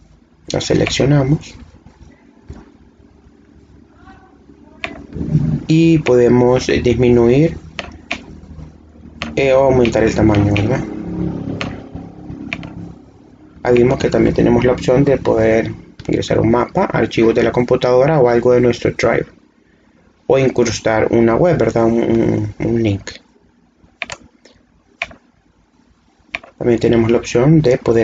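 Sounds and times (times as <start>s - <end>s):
steady low hum: 0.0s - 28.0s
computer mouse clicks: 4.8s - 5.4s, 7.6s - 10.8s, 11.6s - 12.9s, 23.9s - 25.3s, 26.3s - 26.6s.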